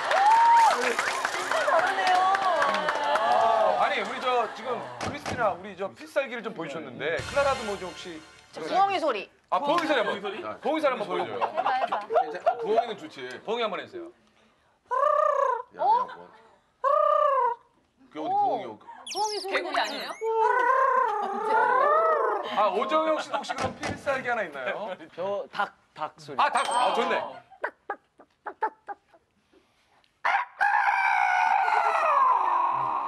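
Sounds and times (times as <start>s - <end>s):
woman imitating owl hoot: 14.9s - 15.7s
man imitating rooster crow: 30.2s - 33.0s.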